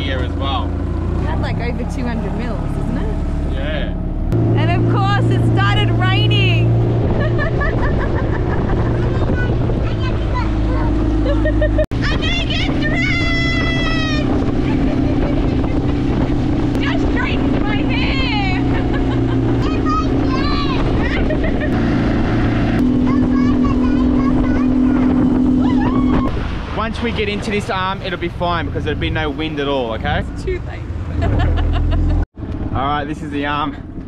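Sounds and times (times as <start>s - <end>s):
outboard motor running: 0.0s - 34.0s
wind on microphone: 4.4s - 27.6s
water rushing past hull: 4.4s - 30.2s.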